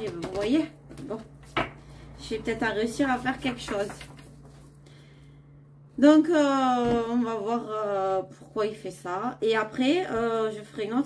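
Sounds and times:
low steady hum: 0.0 - 11.0
cards being shuffled: 3.1 - 4.8.

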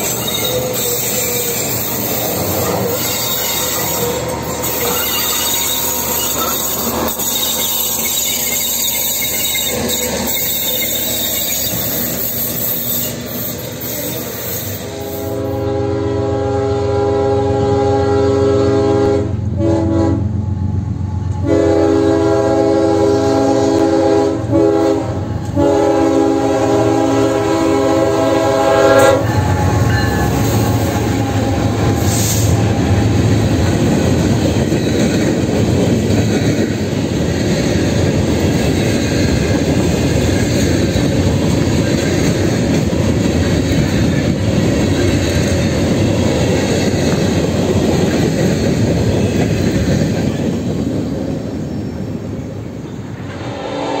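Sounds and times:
train wheels clattering on rails: 0.0 - 15.5, 29.0 - 52.1
locomotive horn blasts: 14.8 - 20.3, 21.4 - 33.1.

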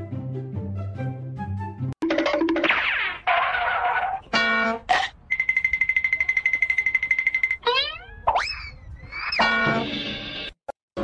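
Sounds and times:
fast high beeping: 5.3 - 8.6
boing-like sliding whistle: 7.6 - 10.0.

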